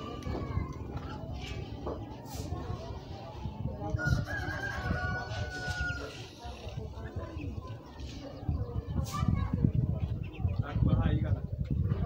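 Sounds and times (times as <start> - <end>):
rooster crowing: 4.0 - 6.1.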